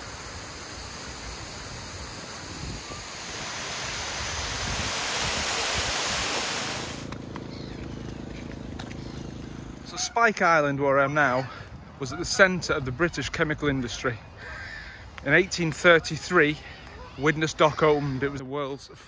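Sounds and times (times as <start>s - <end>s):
low outdoor background: 6.6s - 19.0s.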